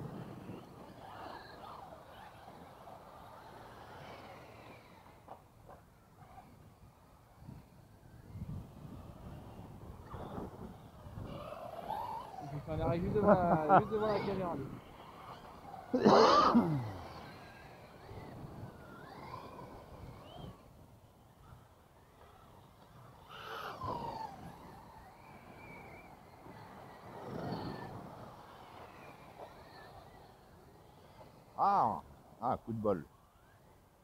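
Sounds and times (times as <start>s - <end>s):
rc car motor whine: 0.0s - 34.0s
man coughing loudly: 16.0s - 17.0s.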